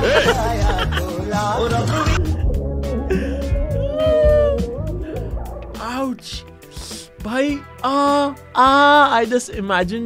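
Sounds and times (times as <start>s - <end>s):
heavy bass beat: 0.0s - 6.9s
filtered wailing voice: 3.1s - 5.1s.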